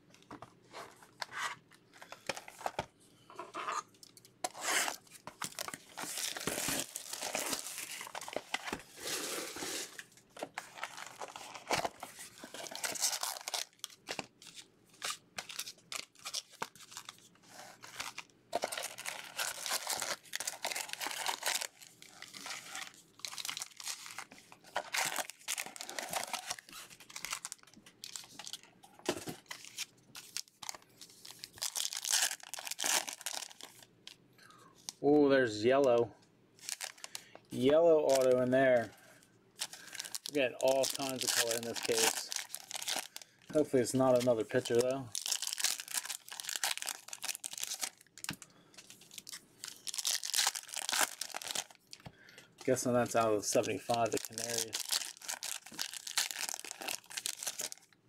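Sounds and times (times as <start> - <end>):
packaging tearing and crinkling: 4.4 - 28.7, 29.4 - 33.9, 36.6 - 37.2, 38.1 - 38.8, 39.6 - 52.0, 52.7 - 57.9.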